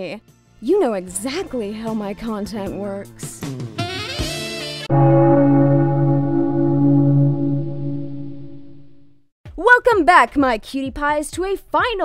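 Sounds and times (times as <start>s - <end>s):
deep bell-like musical tone: 4.9s - 9.1s.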